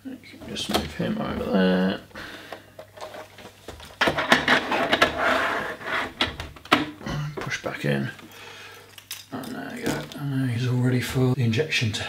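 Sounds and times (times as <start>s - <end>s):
module scraping slide with rattles: 4.2s - 6.3s.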